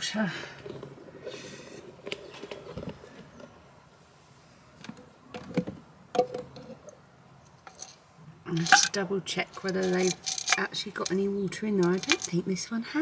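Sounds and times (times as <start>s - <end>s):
glass jars knocking and clinking: 8.5s - 9.0s, 11.8s - 12.4s.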